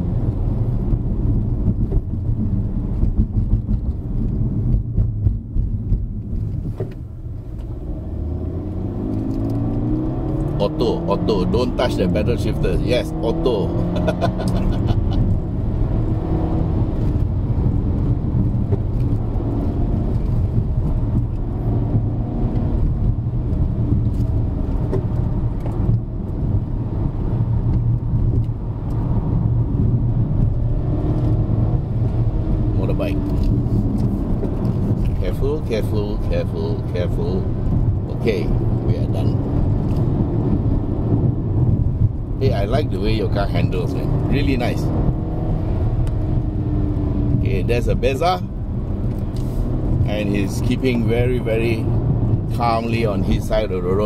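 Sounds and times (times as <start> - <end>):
car engine hum: 0.0 - 54.0
road noise: 0.0 - 54.0.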